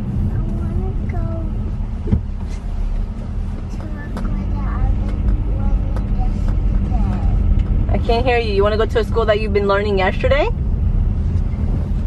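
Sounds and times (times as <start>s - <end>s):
car road and engine rumble: 0.0s - 12.0s
child murmuring: 0.4s - 1.6s, 3.8s - 7.3s.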